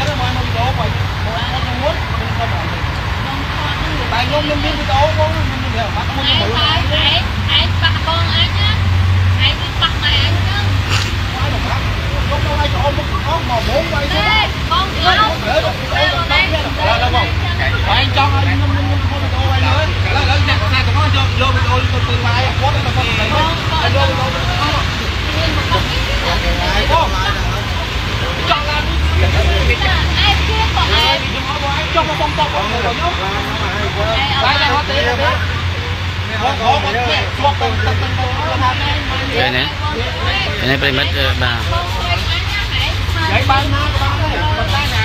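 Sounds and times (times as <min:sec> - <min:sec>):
low rumble of street traffic: 0:00.0 - 0:45.0
man and woman arguing: 0:00.0 - 0:45.0.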